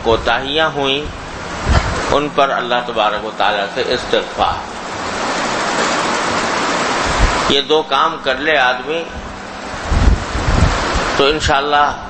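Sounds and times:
steady rushing hiss: 0:00.0 - 0:12.0.

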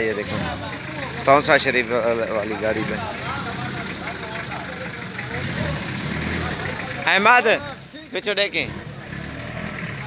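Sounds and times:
faint voices: 0:00.0 - 0:10.0
truck engine idling: 0:00.0 - 0:10.0.

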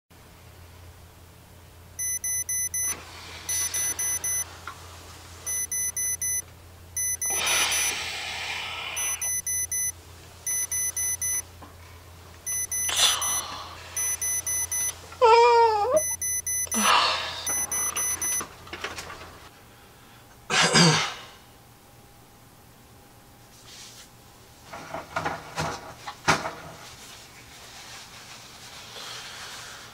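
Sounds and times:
alarm clock beeping: 0:02.0 - 0:04.5, 0:05.5 - 0:06.4, 0:07.0 - 0:08.0, 0:09.0 - 0:11.4, 0:12.5 - 0:13.4, 0:14.0 - 0:14.9, 0:16.0 - 0:18.4
breathy noises: 0:07.2 - 0:09.4, 0:12.5 - 0:18.3.

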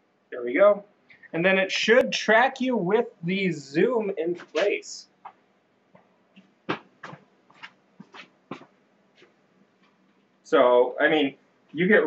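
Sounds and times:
faint footsteps: 0:04.3 - 0:10.4.

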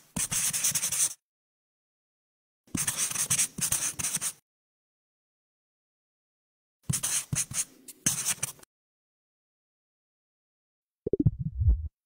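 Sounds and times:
pen scratching on paper: 0:00.2 - 0:01.2, 0:02.7 - 0:04.4, 0:06.9 - 0:08.6.

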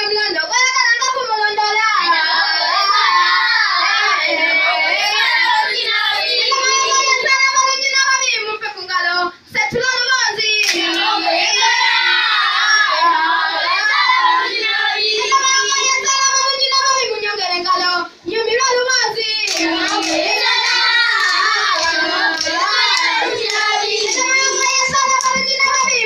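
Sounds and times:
children singing: 0:02.0 - 0:07.3, 0:10.6 - 0:17.9, 0:19.0 - 0:26.0.

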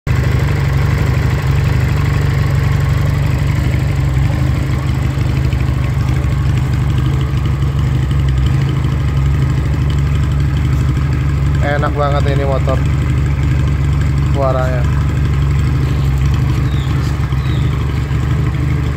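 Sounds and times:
motorcycle engine idling: 0:00.1 - 0:18.9.

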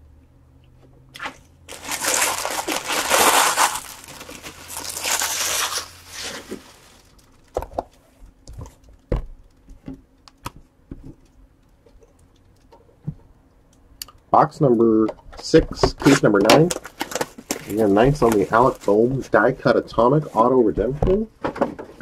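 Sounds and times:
plastic wrapping tearing and crumpling: 0:01.2 - 0:07.6.

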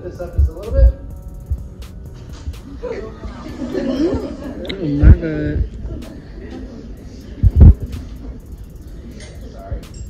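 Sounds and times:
low thumps: 0:07.4 - 0:08.0.

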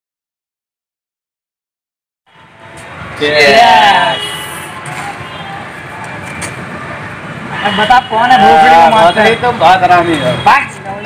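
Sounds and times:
road traffic rumble and hiss: 0:02.3 - 0:11.0
man talking: 0:03.2 - 0:04.5, 0:07.5 - 0:10.8.

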